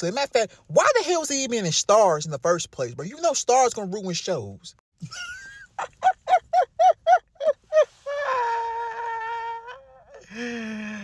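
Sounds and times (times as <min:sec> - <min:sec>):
man laughing high-pitched: 0:05.0 - 0:10.5.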